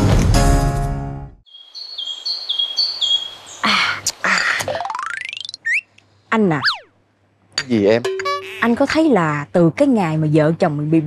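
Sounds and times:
birds chirping: 0:01.5 - 0:06.9.

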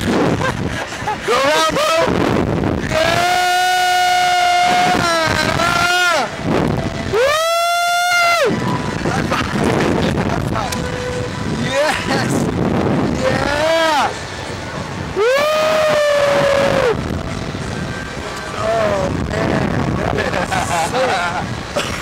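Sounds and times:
wind on microphone: 0:00.0 - 0:22.0
riders screaming: 0:02.8 - 0:06.4, 0:07.0 - 0:08.9, 0:15.2 - 0:17.0.

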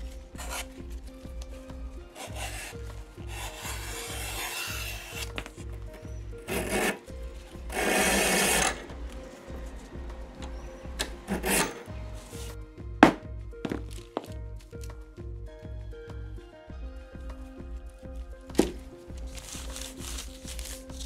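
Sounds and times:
blade scraping leather strap: 0:00.0 - 0:01.4, 0:02.1 - 0:09.5, 0:10.5 - 0:12.6, 0:18.5 - 0:21.0.

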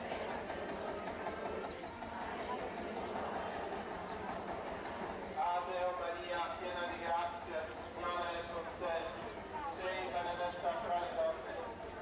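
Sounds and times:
crowd hubbub: 0:00.0 - 0:12.0.

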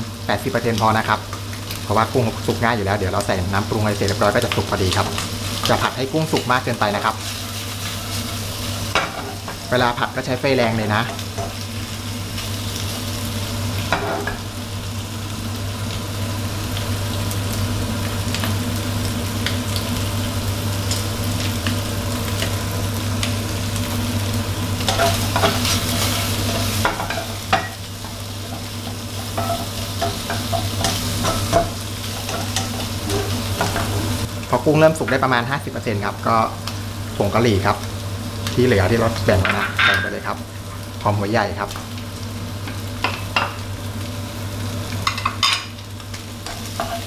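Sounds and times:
shrimp sizzling in hot oil: 0:00.0 - 0:47.0
spatula scraping a wok: 0:07.2 - 0:09.4, 0:24.8 - 0:34.2, 0:46.5 - 0:47.0.

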